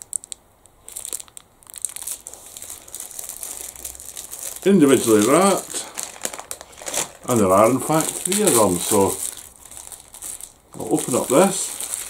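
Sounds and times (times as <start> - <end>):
packaging crinkling: 0.0 - 12.0.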